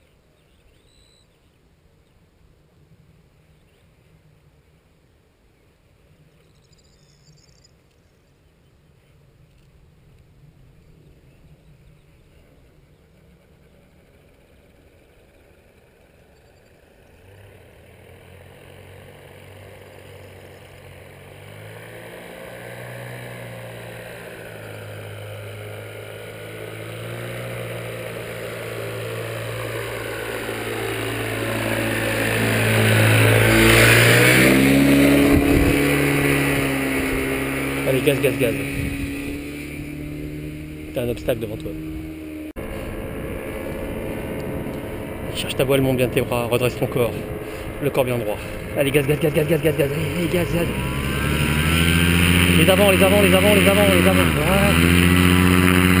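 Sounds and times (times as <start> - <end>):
paramotor engine and propeller: 5.8 - 56.0.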